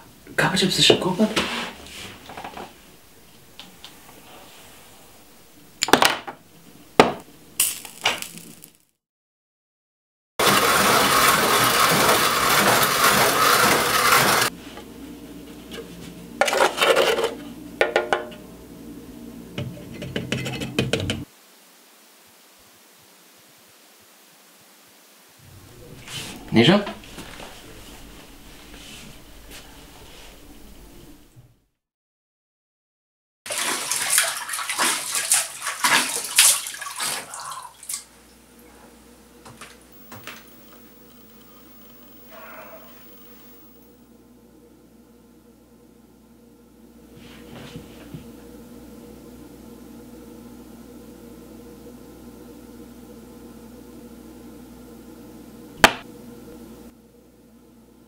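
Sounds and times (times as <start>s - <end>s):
water splashing from hands: 33.5s - 38.1s.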